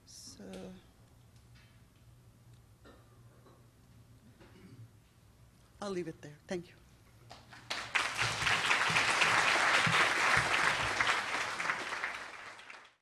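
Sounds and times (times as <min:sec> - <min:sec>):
audience applauding: 0:07.3 - 0:13.0.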